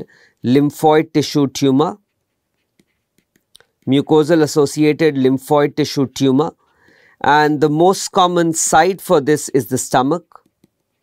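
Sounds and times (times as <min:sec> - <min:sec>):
man talking: 0:00.0 - 0:02.1, 0:03.8 - 0:06.6, 0:07.2 - 0:10.4
pen scratching on paper: 0:00.5 - 0:08.4, 0:09.8 - 0:11.0.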